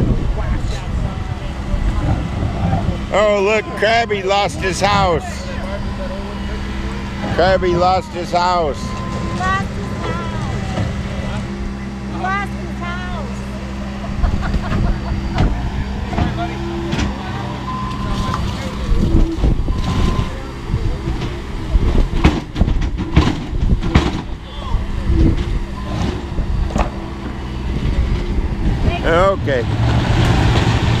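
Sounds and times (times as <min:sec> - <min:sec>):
diesel engine under load: 0:00.0 - 0:31.0.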